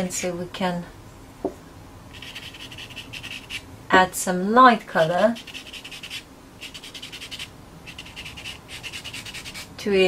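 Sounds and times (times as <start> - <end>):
pencil scratching on paper: 2.2 - 3.6, 5.4 - 9.7.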